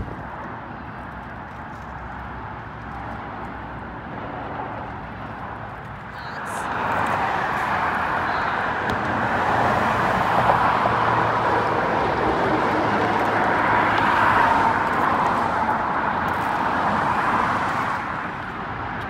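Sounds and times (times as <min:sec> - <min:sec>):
road traffic rushing: 0:00.0 - 0:19.0.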